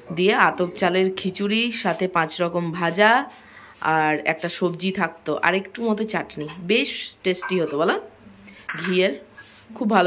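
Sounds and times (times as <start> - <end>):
utensils clinking on steel plates: 7.3 - 8.0, 8.6 - 9.6.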